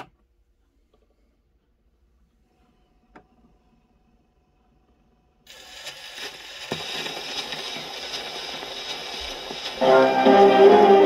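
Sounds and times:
record surface hiss and crackle: 4.9 - 11.0.

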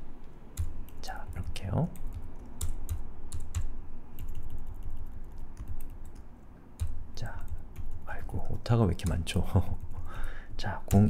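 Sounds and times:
computer keyboard typing: 0.2 - 11.0.

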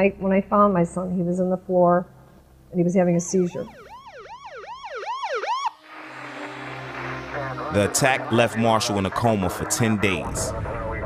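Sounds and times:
ambulance siren yelping: 3.3 - 11.0
low steady drone: 5.8 - 11.0.

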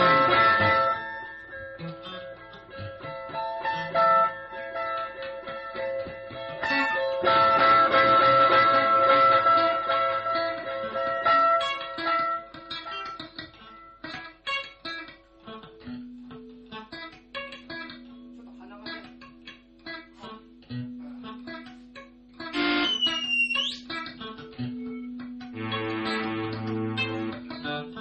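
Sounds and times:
electric guitar improvising: 0.0 - 28.0
high thin guitar squeal: 22.5 - 24.0.

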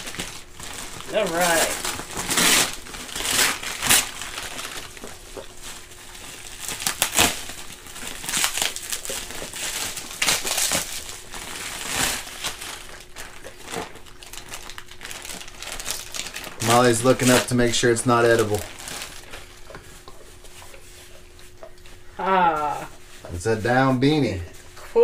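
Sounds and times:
plastic bag crinkling: 0.0 - 21.6
wrapping paper rustling: 0.0 - 21.6.

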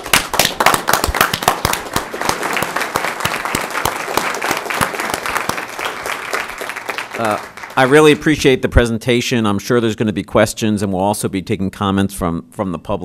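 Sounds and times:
audience applauding: 0.0 - 8.4.

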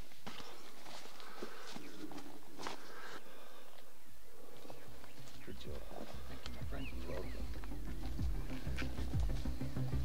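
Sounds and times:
footsteps in dry grass: 0.0 - 10.0
twigs snapping: 6.1 - 6.6, 7.2 - 9.5.

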